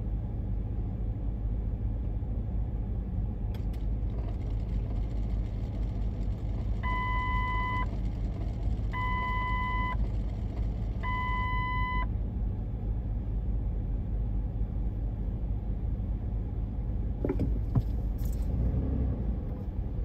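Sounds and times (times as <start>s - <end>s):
city traffic rumble: 0.0s - 20.0s
reversing beeper: 6.8s - 7.9s, 9.0s - 10.0s.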